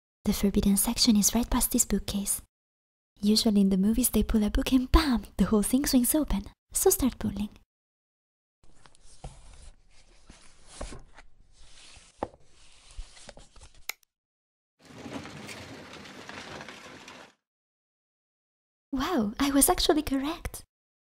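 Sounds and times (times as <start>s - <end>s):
bookcase door scraping open: 14.8s - 17.4s
books sliding on wooden shelves: 14.8s - 17.4s.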